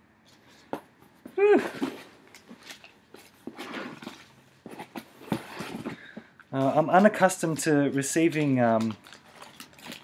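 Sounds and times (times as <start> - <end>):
paper and card rustling: 1.7 - 10.0.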